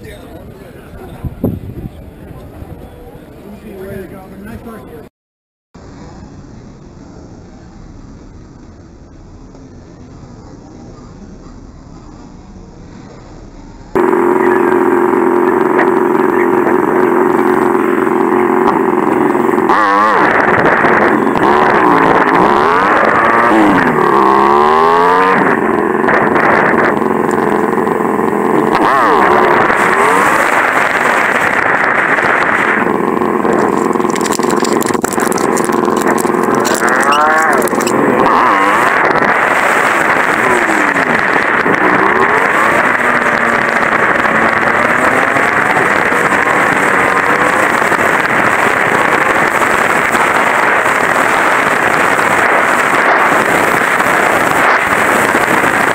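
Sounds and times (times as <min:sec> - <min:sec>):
wind and road noise: 0:00.0 - 0:05.1, 0:05.8 - 0:55.9
motorcycle engine revving: 0:12.2 - 0:55.9.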